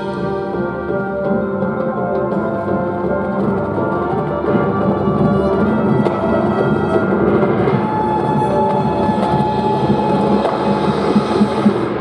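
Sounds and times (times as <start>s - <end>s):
drum corps brass and percussion: 0.0s - 12.0s.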